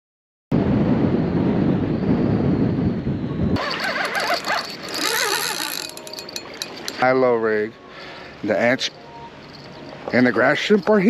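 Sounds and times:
wind buffeting a microphone: 0.5s - 6.7s.

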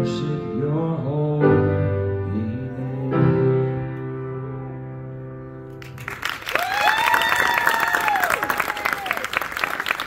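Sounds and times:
audience applause: 5.8s - 10.0s
cheering voices: 6.5s - 10.0s.

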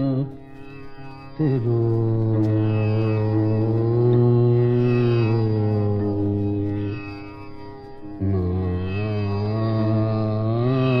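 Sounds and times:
man singing long notes: 0.0s - 0.4s, 1.4s - 7.6s, 8.2s - 11.0s
faint drone: 0.0s - 11.0s.

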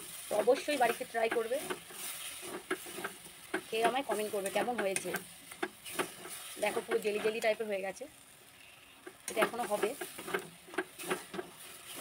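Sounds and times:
spatula scraping metal pan: 0.0s - 7.6s, 9.0s - 12.0s
faint sizzle: 0.0s - 12.0s.

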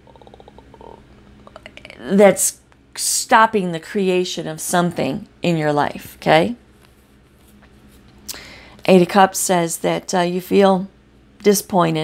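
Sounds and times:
mouth clicks: 0.0s - 1.8s
creaky vocal fry hum: 0.0s - 2.6s, 4.4s - 5.5s.

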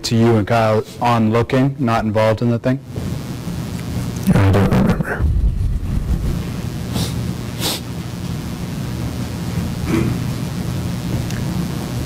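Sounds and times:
microphone hiss and hum: 0.0s - 12.0s.

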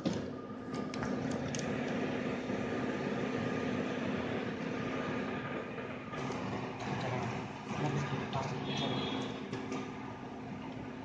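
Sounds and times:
machinery humming with faint whine: 0.0s - 11.0s.

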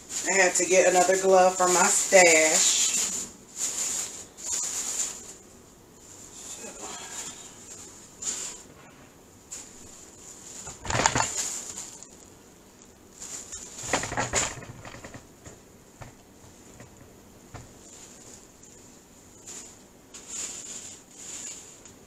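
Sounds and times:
plastic glove crinkling: 0.0s - 22.0s.

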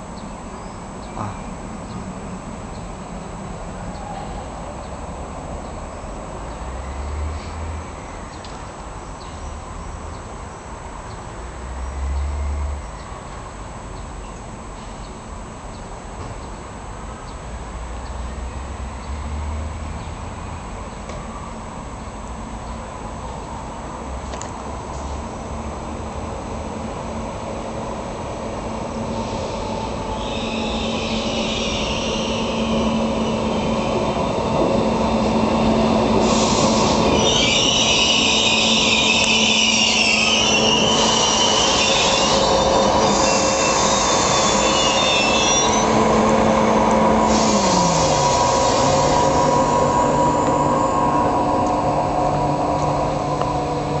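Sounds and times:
train rolling noise: 0.0s - 54.0s
wheels and brakes squealing: 29.0s - 54.0s.

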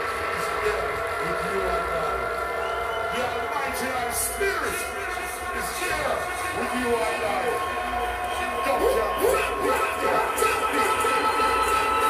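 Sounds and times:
echoing male voice: 3.1s - 11.7s.

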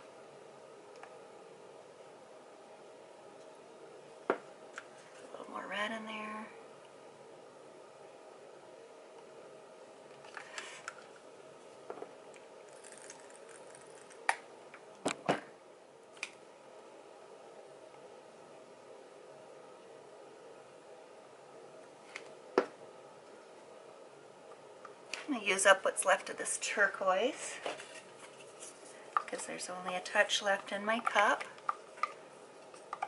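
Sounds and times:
faint steady hum: 0.0s - 33.0s.

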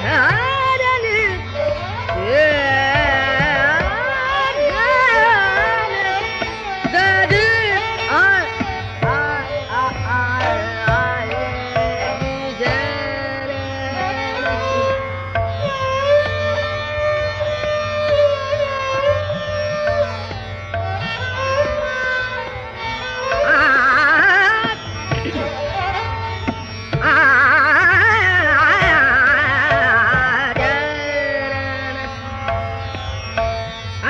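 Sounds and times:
tabla strokes: 0.0s - 34.0s
tanpura strings plucked and ringing: 0.0s - 34.0s
person singing: 9.0s - 14.9s, 27.0s - 32.2s.

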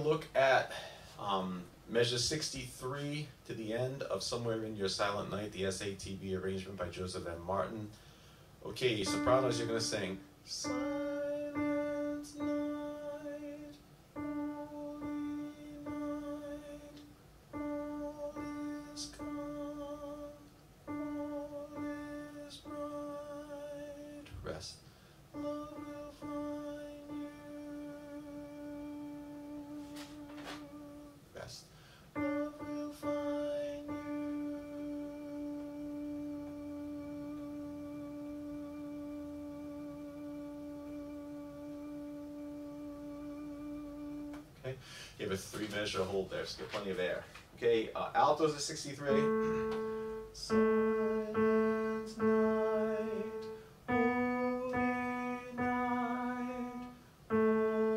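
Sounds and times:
soprano singing melody line: 8.8s - 24.6s, 25.3s - 31.4s, 32.2s - 44.6s, 49.0s - 57.9s.

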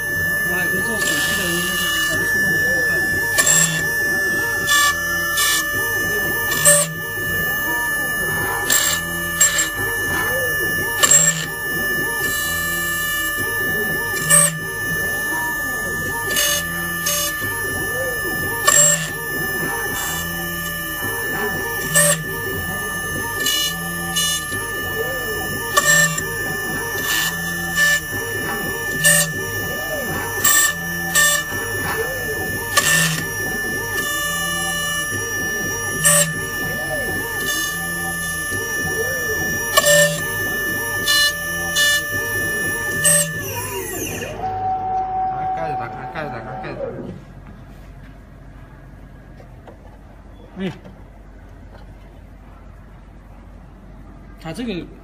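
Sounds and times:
high machine whine: 0.0s - 55.0s.

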